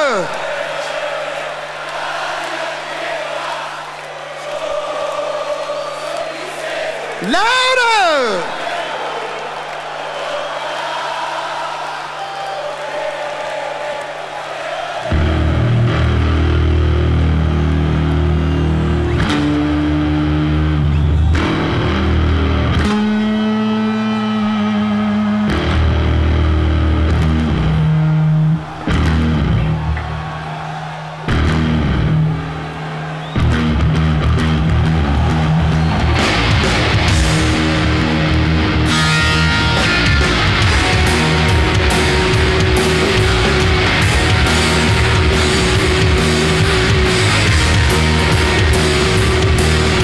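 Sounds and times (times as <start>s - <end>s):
crowd cheering: 0.0s - 50.0s
rock band playing heavy riff: 15.1s - 30.2s, 33.3s - 50.0s.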